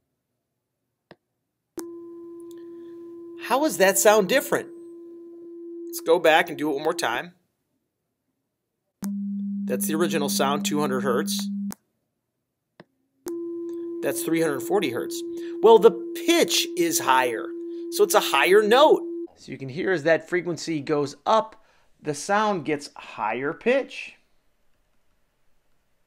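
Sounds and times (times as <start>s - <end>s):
steady sine tone: 13.3s - 19.3s.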